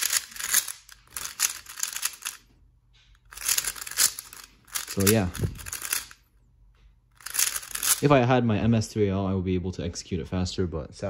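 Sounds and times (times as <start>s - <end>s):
puzzle cube clicking turns: 0.0s - 2.4s, 3.3s - 6.2s, 7.2s - 8.0s.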